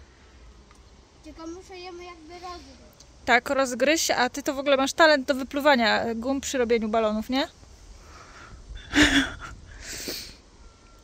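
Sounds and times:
child blowing breathy puffs: 0:08.0 - 0:10.4.

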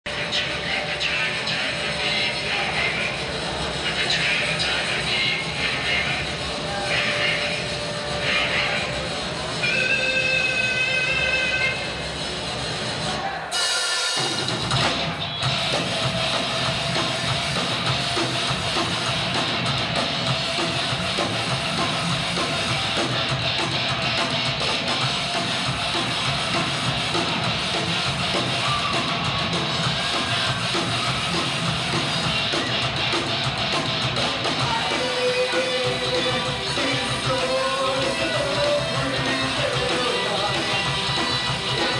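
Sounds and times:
voices: 0:00.1 - 0:13.6, 0:15.0 - 0:41.9
rock band playing: 0:00.1 - 0:41.9.

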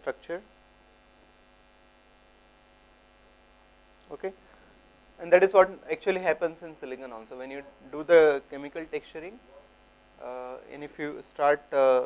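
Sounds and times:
electrical hum: 0:00.0 - 0:12.0.

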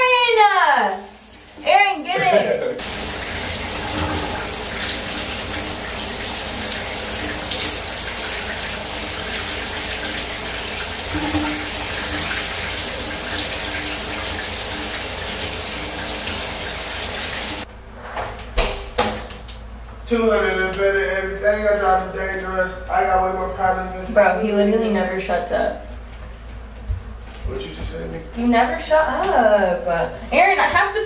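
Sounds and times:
shower water spraying: 0:00.7 - 0:17.7.

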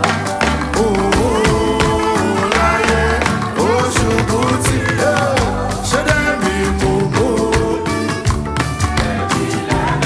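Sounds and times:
electric guitars: 0:00.0 - 0:10.0
live band music: 0:00.0 - 0:10.0.

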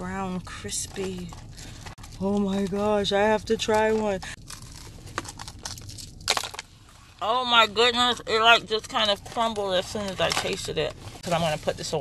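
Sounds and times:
crispy onion ring being chewed: 0:04.2 - 0:06.7.

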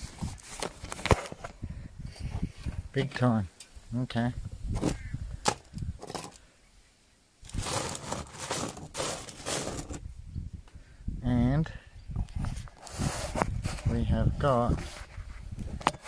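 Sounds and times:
gravel scraping on table: 0:07.5 - 0:10.0.

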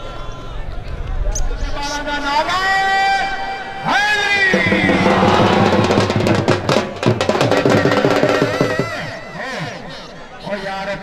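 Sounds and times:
loud drum-led music: 0:04.5 - 0:09.2.

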